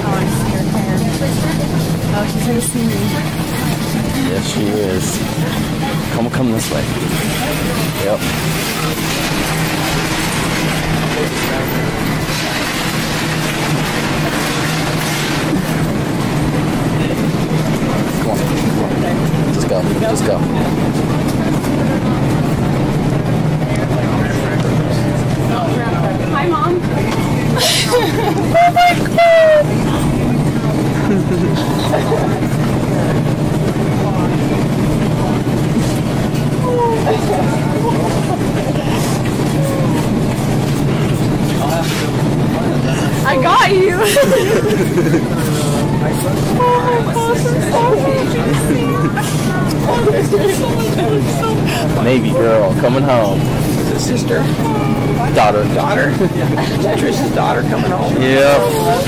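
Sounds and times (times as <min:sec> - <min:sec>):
indistinct chatter: 0:00.0 - 0:59.0
steady hum: 0:00.0 - 0:59.0.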